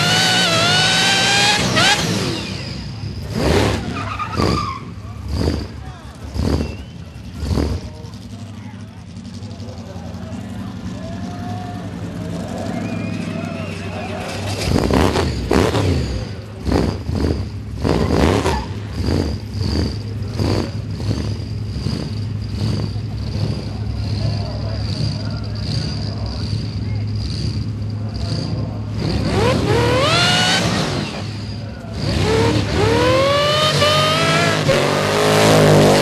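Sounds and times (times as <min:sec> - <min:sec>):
car engine idling and revving: 0:00.0 - 0:36.0.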